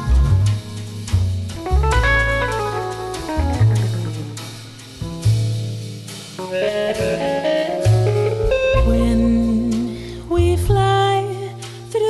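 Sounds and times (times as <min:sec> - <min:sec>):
walking bass line: 0:00.0 - 0:11.4
jazz melodic solo: 0:00.0 - 0:11.5.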